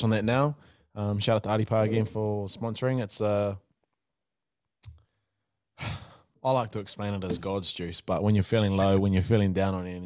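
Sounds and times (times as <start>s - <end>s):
man speaking: 0.0s - 3.6s, 6.4s - 10.0s.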